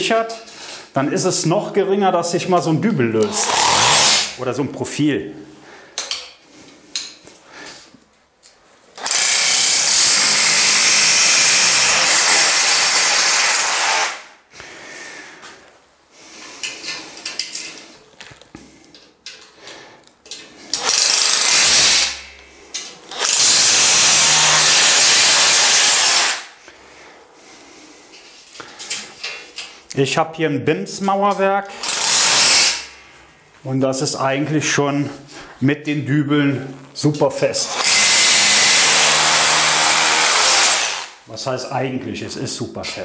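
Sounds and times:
cordless drill boring into masonry: 3.2 - 4.4, 9.0 - 14.3, 20.7 - 22.2, 23.1 - 26.5, 31.8 - 32.9, 37.7 - 41.2.

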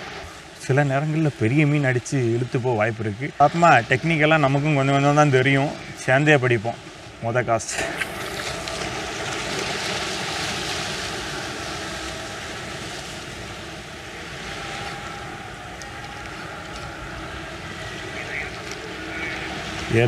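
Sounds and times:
waves washing against rocks: 0.0 - 20.0
wind on microphone: 7.8 - 20.0.

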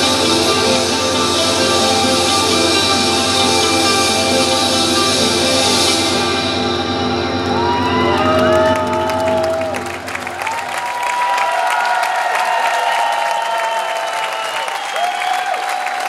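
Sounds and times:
band final chord ringing: 0.0 - 10.9
sliding whistle-like tones: 0.0 - 10.9, 13.8 - 15.6
audience applause and cheering: 0.0 - 16.0.

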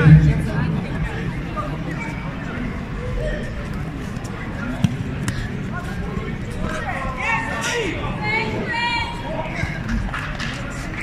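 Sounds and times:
background chatter: 0.0 - 11.0
raised voices: 0.0 - 11.0.

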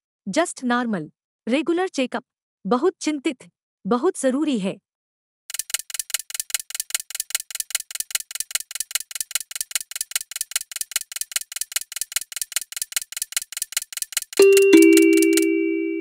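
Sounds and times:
rapid clock ticking: 5.5 - 15.5.

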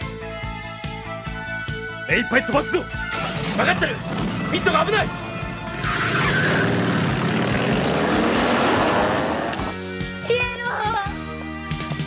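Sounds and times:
cartoon motorcycle engines: 3.1 - 9.7
off-road vehicle driving fast: 3.1 - 9.8.

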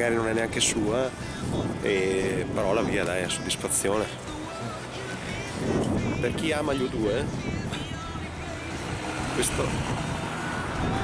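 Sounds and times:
outdoor street rumble: 0.0 - 11.0.

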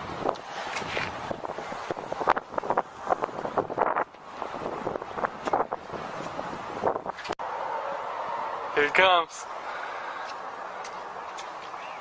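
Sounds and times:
wind buffeting microphone: 0.0 - 7.4
steady outdoor rumble: 0.0 - 12.0.

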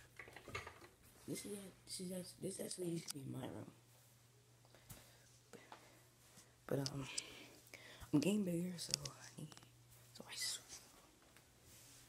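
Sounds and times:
low steady hum: 0.0 - 12.0
faint whisper: 8.7 - 11.1.

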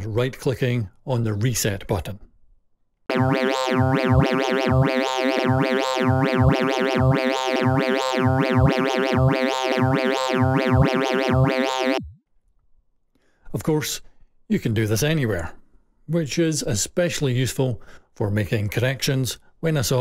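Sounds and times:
synth note with wah sweeps: 3.1 - 12.2.

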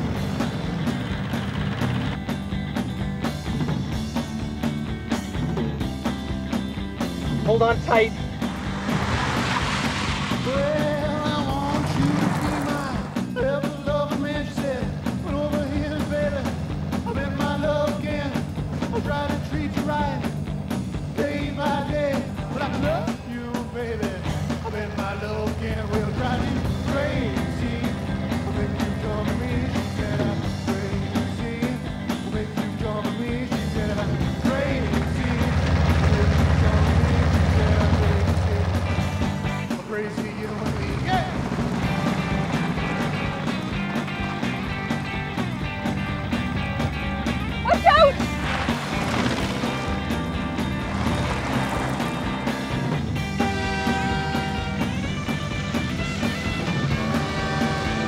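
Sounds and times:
rock music with guitar: 0.0 - 58.0.

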